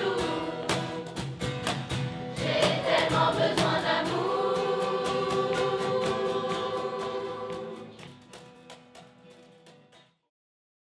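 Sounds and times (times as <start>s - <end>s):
children's choir singing: 0.0s - 1.4s, 2.3s - 8.1s
cajon beat: 0.0s - 10.0s.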